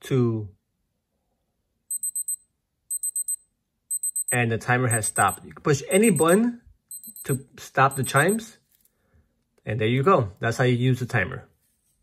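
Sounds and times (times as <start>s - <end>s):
wristwatch alarm beeps: 1.9s - 8.4s.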